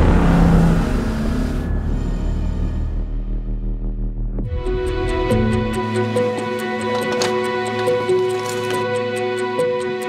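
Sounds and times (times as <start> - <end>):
low dark music drone: 0.0 - 10.0.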